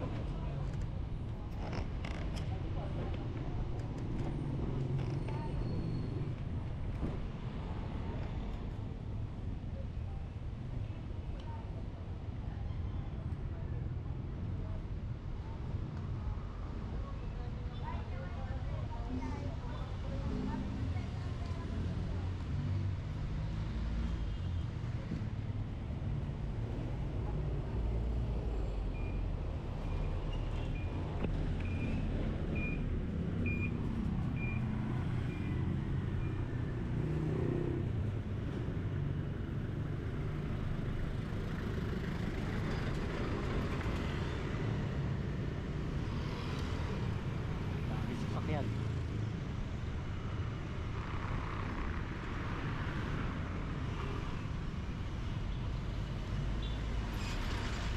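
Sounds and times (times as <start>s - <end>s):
street traffic: 0.0s - 57.9s.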